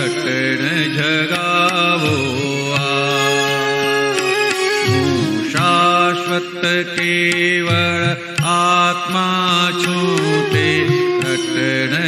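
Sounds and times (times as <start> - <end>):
devotional song music: 0.0 - 12.0.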